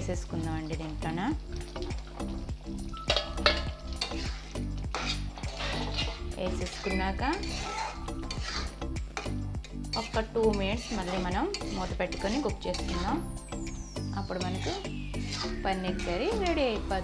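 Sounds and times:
steel ladle scraping metal pan: 1.6s - 17.0s.

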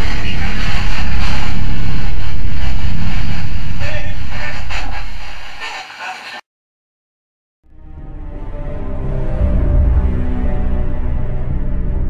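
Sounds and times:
deep rumble: 0.0s - 5.6s, 8.3s - 12.0s
loud hissing static: 0.0s - 6.4s.

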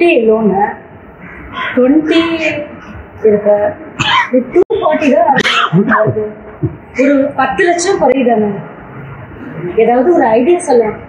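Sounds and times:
woman speaking: 0.0s - 0.8s, 1.7s - 8.7s, 9.8s - 11.0s.

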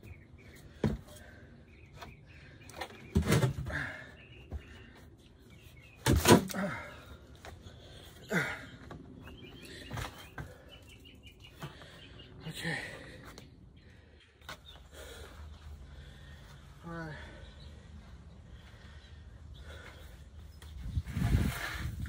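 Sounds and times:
small birds chirping: 0.0s - 22.0s.

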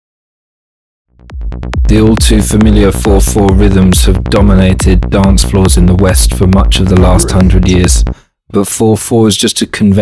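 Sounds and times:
electronic dance music: 1.2s - 8.2s.

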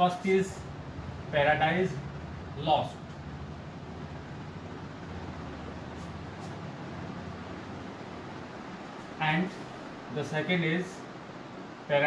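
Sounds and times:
low hum: 0.0s - 10.3s
room hiss: 0.0s - 12.0s.

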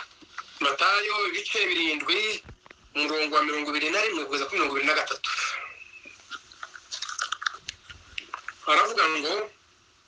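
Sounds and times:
mouth clicks and lip smacks: 5.2s - 8.6s.

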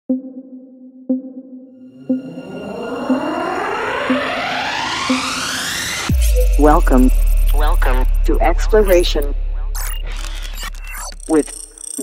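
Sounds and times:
synthesized ping note: 1.2s - 9.8s.

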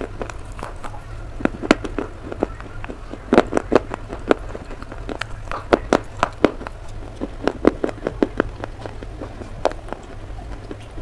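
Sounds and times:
clay being chewed crunching: 0.0s - 11.0s.

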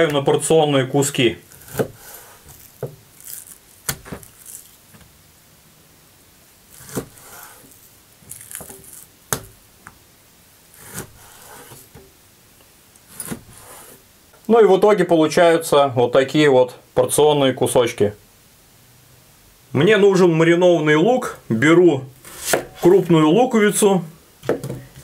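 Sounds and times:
knife slicing fish: 1.5s - 4.6s, 10.8s - 11.9s.

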